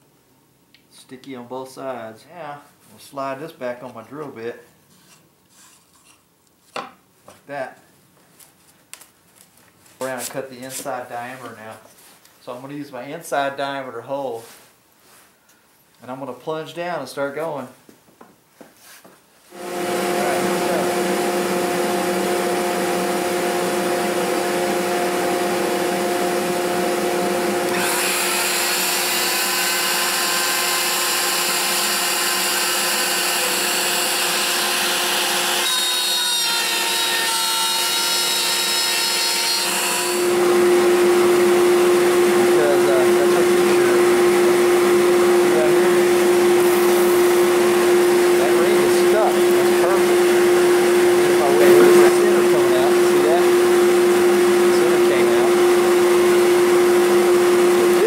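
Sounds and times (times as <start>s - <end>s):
high whine: 19.5s - 27.8s, 40.4s - 58.0s
router running: 19.5s - 58.0s
shop vacuum: 19.5s - 58.0s.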